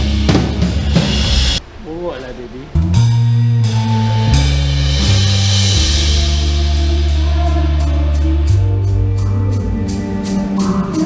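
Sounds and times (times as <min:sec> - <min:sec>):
drum kit steady beat: 0:00.0 - 0:02.1, 0:02.7 - 0:11.0
electric bass long low notes: 0:00.0 - 0:11.0.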